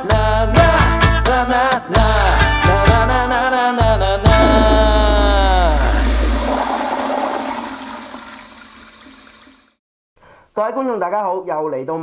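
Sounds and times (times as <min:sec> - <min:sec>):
tone falling in pitch: 0:04.3 - 0:08.5
rushing noise: 0:04.3 - 0:09.0.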